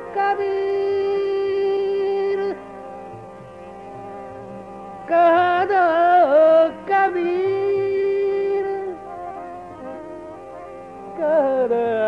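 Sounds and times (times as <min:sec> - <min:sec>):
instrumental drone of held tones: 0:00.0 - 0:12.0.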